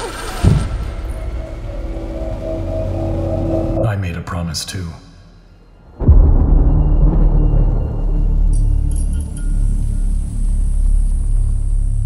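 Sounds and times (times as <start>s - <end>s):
low held musical drone: 0.6s - 4.1s, 5.9s - 12.0s
deep hit: 5.8s - 11.5s.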